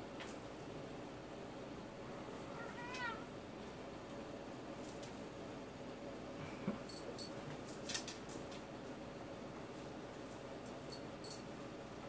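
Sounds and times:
kitten mewing: 2.4s - 3.3s.

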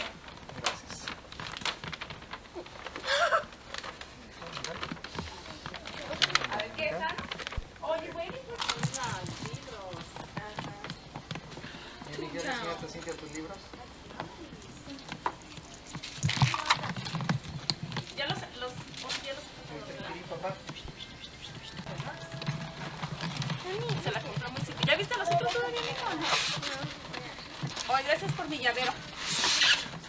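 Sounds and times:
gift bags and wrapping rustling: 0.0s - 30.0s
voices in background: 2.5s - 30.0s
people talking indistinctly: 4.1s - 29.6s.

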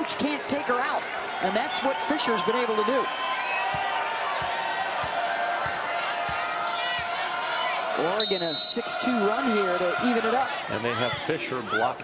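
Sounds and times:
volleyball bouncing on floor: 3.6s - 7.3s.

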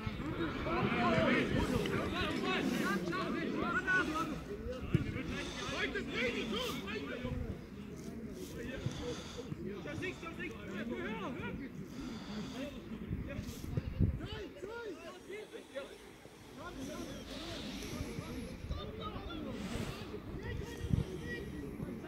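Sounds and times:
shouts and chatter: 0.0s - 4.6s.

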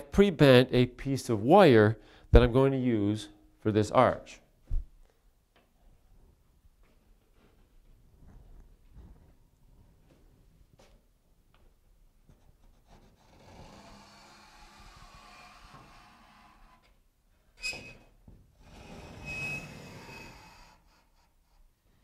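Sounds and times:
pencil scratching on drywall: 12.3s - 16.8s, 18.7s - 21.7s
sharp squeak: 17.6s - 18.1s, 19.1s - 20.6s.

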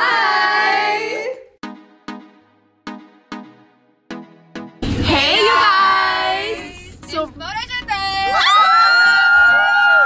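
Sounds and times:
young women cheering: 8.3s - 10.0s.

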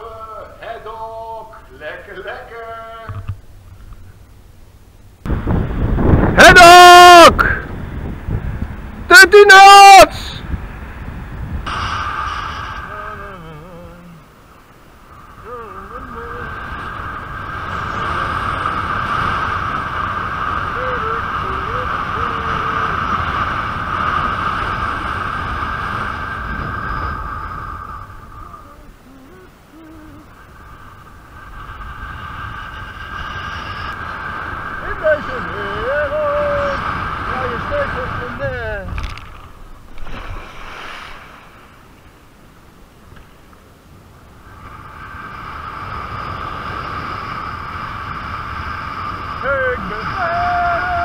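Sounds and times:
wind rushing over microphone: 3.1s - 51.0s
high-pitched whine: 11.6s - 42.1s.

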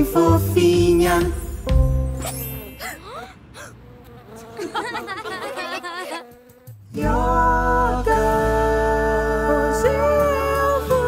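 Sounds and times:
buzzing warbling cartoon voice: 4.2s - 6.7s.

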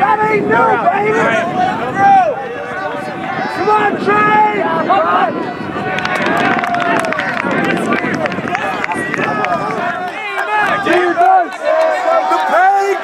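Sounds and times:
crowd shouting and cheering: 0.0s - 13.0s
sharp claps: 5.9s - 12.0s.

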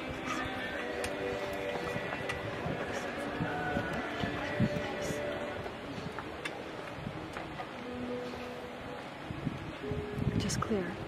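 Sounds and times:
faint music: 0.0s - 11.0s
steady crowd murmur: 0.0s - 11.0s.

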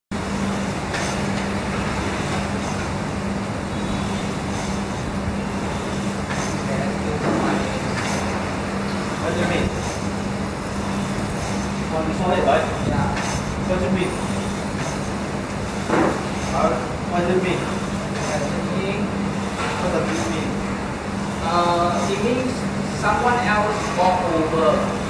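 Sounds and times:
rowing machine fan whirring: 0.1s - 25.0s.

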